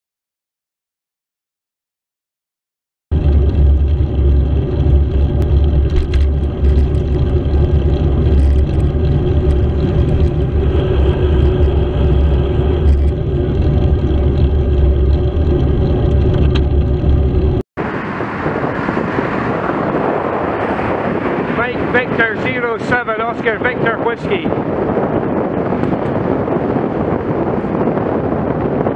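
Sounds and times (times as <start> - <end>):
wind and road rumble: 3.1 - 28.9
wind noise on microphone: 3.1 - 28.9.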